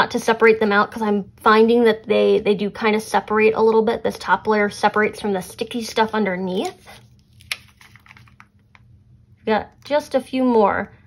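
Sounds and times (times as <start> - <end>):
sticker sheet being handled: 6.0 - 8.8.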